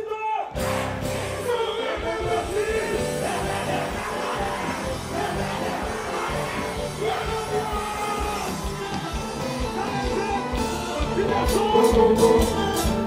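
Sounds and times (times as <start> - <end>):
live band music over speakers: 0.5 - 13.0
repeating bass beat: 0.6 - 10.5
male singer: 1.5 - 13.0.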